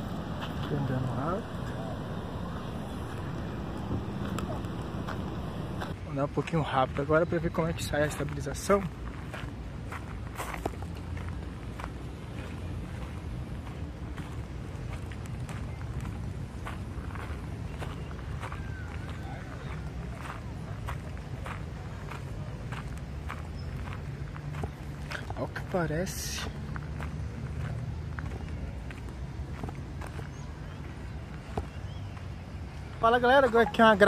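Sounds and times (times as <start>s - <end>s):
footsteps crunching on gravel: 0.0s - 6.0s
steady low rumble: 0.0s - 6.0s.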